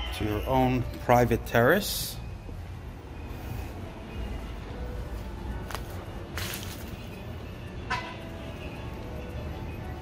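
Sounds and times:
city street rumble: 0.0s - 10.0s.

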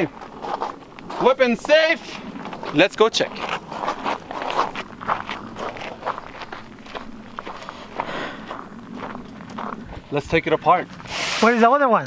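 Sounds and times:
footsteps crunching on gravel: 0.0s - 11.6s.

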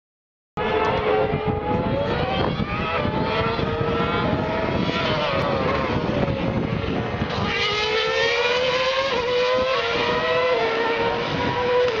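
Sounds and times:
racing car engine at high revs: 0.6s - 12.0s.

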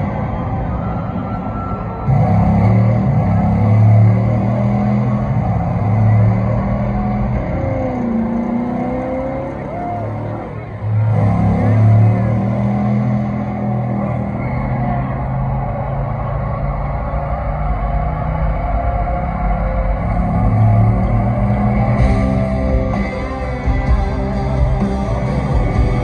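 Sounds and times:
car engine over sound system: 0.0s - 26.0s.

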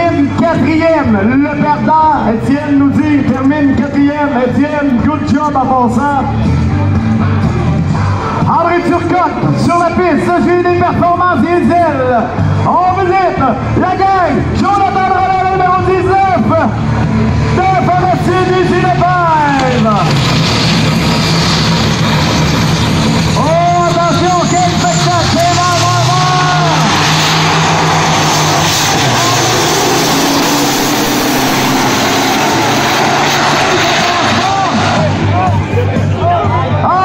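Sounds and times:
trucks revving and racing: 0.0s - 37.0s.

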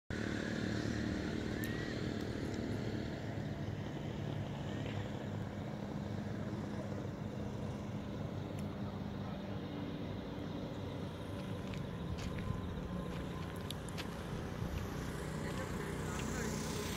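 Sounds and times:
engine humming: 0.1s - 16.9s.

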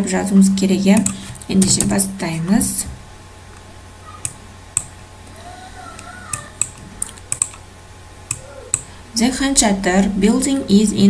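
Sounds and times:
low steady hum: 0.0s - 11.0s
keyboard or mouse clicks: 6.0s - 7.6s.

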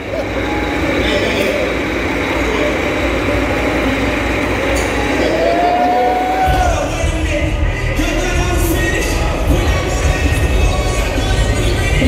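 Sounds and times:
steady low hum: 0.0s - 12.0s
video soundtrack over loudspeakers: 0.0s - 12.0s.

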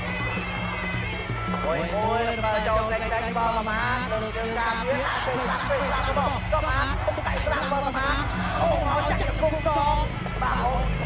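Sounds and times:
reedy wind instrument high notes: 0.0s - 11.0s.

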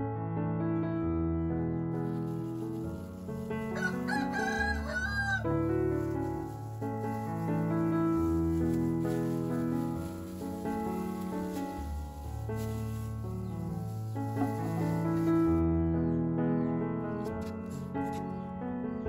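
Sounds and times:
soft piano music: 0.0s - 19.0s
rooster crowing: 3.7s - 5.5s.

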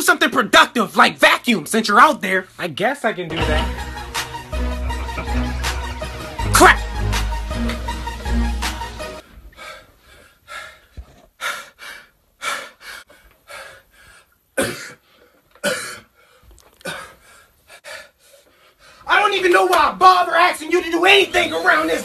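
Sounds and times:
person huffing and gasping: 12.4s - 18.2s.

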